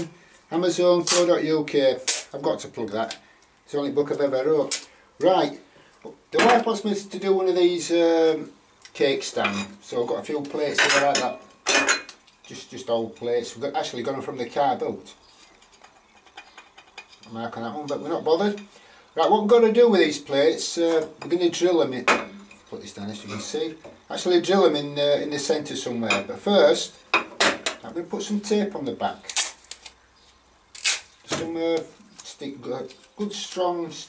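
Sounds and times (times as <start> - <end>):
man speaking: 0.0 - 11.4, 12.5 - 15.2, 17.3 - 18.6, 19.2 - 27.0, 27.8 - 29.3, 31.3 - 34.0
soft hiss: 0.0 - 34.0.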